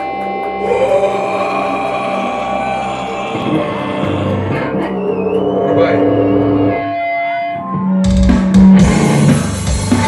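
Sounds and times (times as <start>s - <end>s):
amplified band drone: 0.0s - 10.0s.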